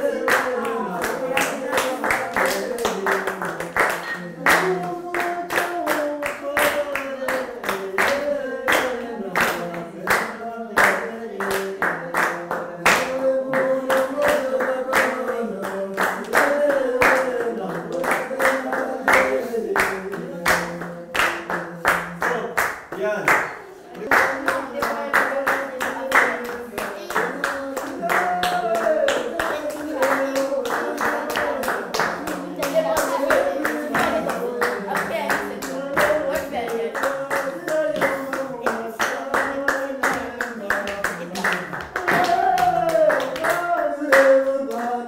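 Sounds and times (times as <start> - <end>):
children singing: 0.0 - 21.9, 23.6 - 45.0
children clapping a beat: 0.0 - 45.0.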